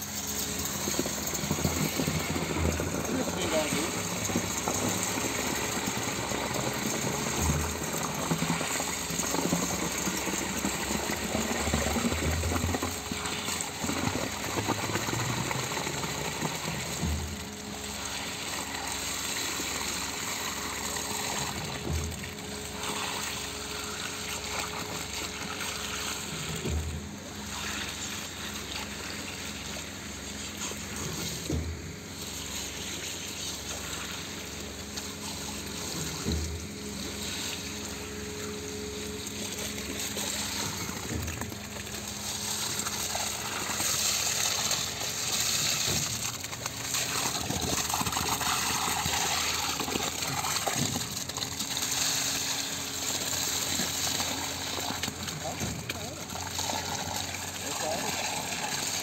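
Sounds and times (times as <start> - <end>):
concrete pump truck running: 0.0 - 59.0.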